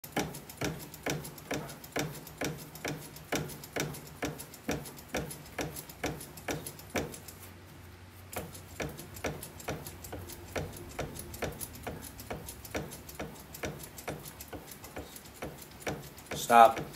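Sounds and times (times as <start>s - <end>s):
low steady hum: 0.1s - 16.9s
bat-rolling machine clicking: 8.4s - 16.9s.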